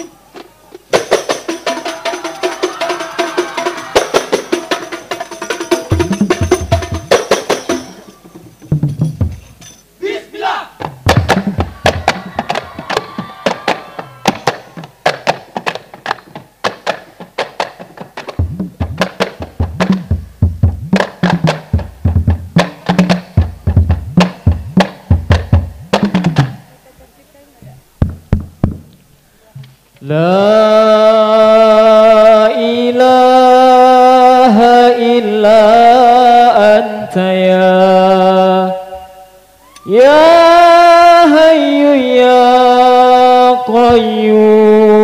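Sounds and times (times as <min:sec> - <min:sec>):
frame drums struck by hand: 0:00.9 - 0:09.8, 0:10.8 - 0:26.7, 0:28.0 - 0:29.0
person calling out: 0:10.0 - 0:10.8.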